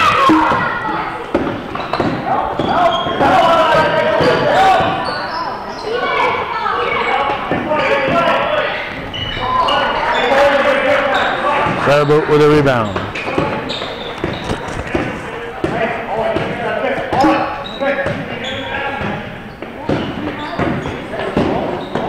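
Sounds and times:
children and spectators calling out: 0:00.0 - 0:12.1
basketball bouncing on gym floor: 0:12.9 - 0:22.0.

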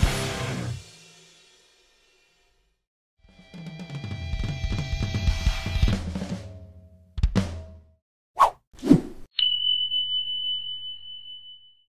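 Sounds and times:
quick swishes: 0:08.4 - 0:09.3.

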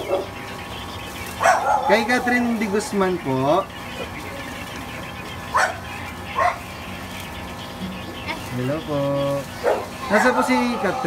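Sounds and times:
dog barking: 0:00.0 - 0:00.4, 0:01.4 - 0:02.4, 0:05.5 - 0:06.7, 0:09.6 - 0:11.0.

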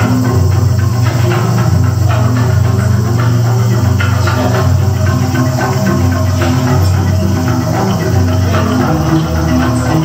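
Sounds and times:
electronic drum kit: 0:00.0 - 0:10.0
low bass notes: 0:00.0 - 0:10.0
mallet percussion ensemble: 0:00.0 - 0:10.0.

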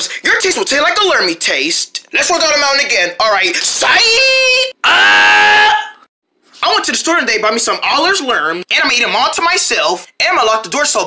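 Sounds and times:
person crying out: 0:03.7 - 0:06.0.

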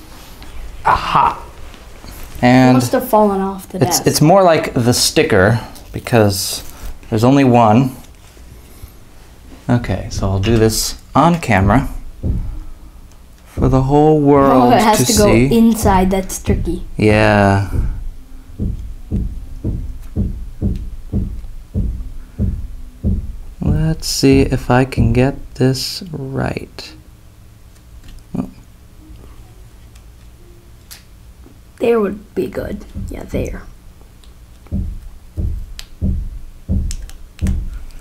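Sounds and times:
soft low thumps: 0:10.0 - 0:12.8, 0:13.5 - 0:25.6, 0:32.9 - 0:33.8, 0:34.7 - 0:37.9.

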